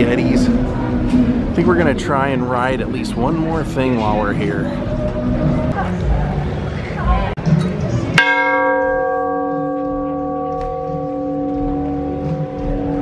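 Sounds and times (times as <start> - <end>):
large bell ringing: 8.2 - 13.0.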